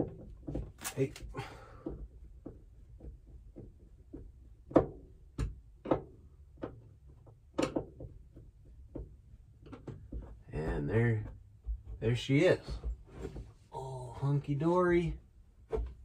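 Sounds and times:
clicks and taps of plastic handling: 0.0 - 12.0.

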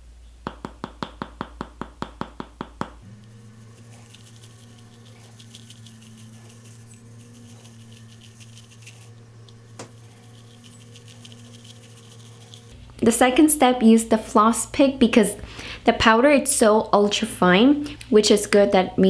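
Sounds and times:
scratchy toothbrushing strokes: 3.0 - 12.8.

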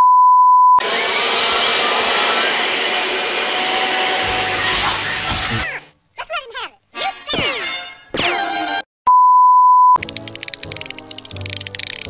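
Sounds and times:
electronic censor beep: 0.0 - 0.8, 9.1 - 10.0
squeaky cartoon sound: 4.6 - 7.9.

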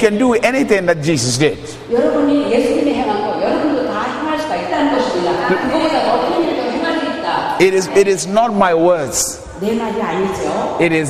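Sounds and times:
woman speaking into microphone: 1.8 - 8.2, 9.4 - 10.8.

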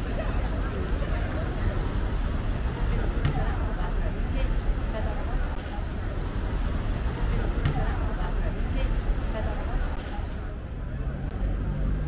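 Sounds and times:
crowd murmur: 0.0 - 12.0
passers-by talking: 0.0 - 12.0
road traffic rumble: 0.0 - 12.0.

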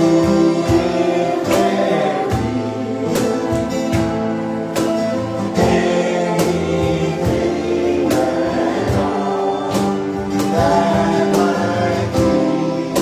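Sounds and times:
man singing: 0.0 - 3.9, 5.5 - 13.0
held keyboard chords: 0.0 - 13.0
strummed acoustic guitar: 0.0 - 13.0.

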